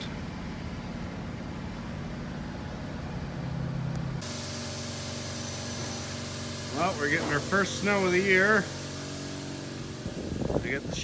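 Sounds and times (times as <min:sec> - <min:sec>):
pickup engine and road drone: 0:00.0 - 0:11.0
steady outdoor hiss: 0:00.0 - 0:11.0.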